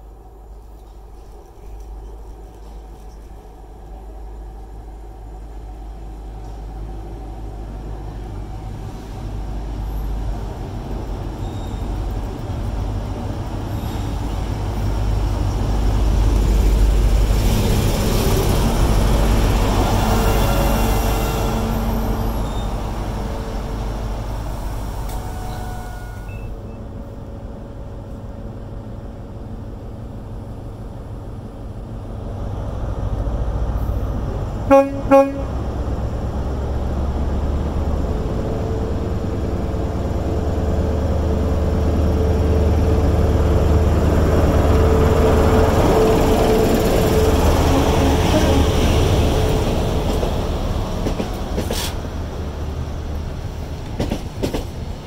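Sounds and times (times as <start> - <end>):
diesel train passing: 0.0 - 55.0
train horn toots: 20.1 - 22.8, 25.2 - 26.5, 34.7 - 35.6.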